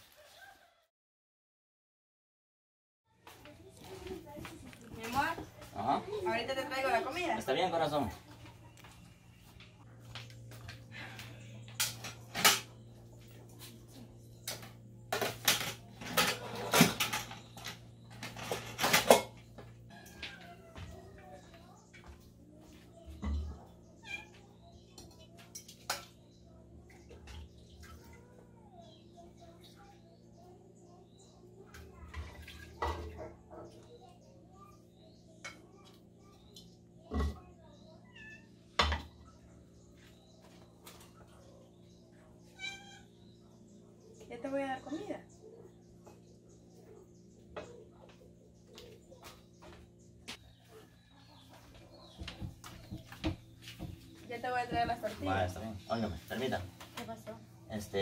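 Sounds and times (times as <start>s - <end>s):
dishes clattering: 11.6s - 12.8s, 14.5s - 20.4s, 32.2s - 33.3s
faint animal calls: 42.3s - 43.5s.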